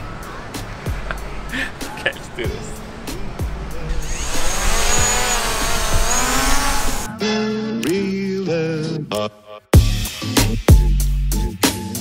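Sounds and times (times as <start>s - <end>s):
background music: 0.0s - 12.0s
drone propellers whining: 3.4s - 7.1s.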